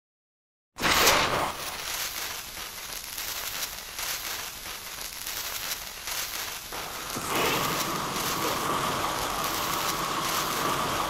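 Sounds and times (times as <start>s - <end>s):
fuse fizzing and crackling: 0.8s - 11.0s.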